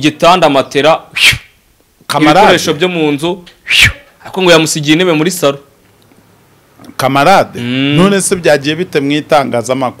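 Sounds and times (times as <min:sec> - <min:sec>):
man speaking: 0:07.0 - 0:10.0.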